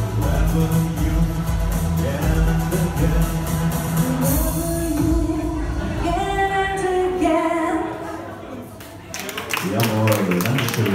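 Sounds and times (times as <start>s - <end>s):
woman singing into a microphone: 4.1s - 8.2s.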